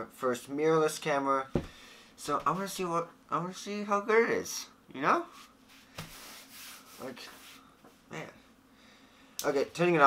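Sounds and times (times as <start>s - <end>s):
hands rubbing on camera: 5.4s - 7.7s.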